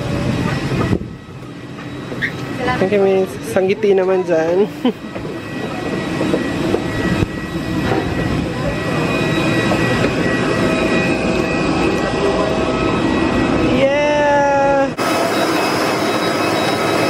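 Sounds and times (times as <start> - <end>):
jet engines whining: 0.0 - 17.0
voices murmuring: 2.1 - 13.0.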